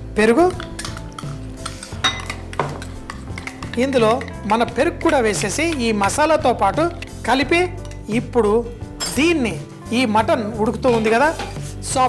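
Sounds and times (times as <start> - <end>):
metal spoon scraping glass bowls: 0.5 - 6.0, 6.8 - 9.2.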